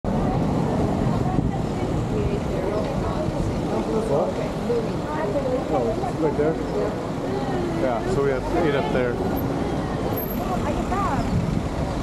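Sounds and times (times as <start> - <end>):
cars driving on cobblestones: 0.1 - 12.0
passers-by talking faintly: 0.1 - 12.0.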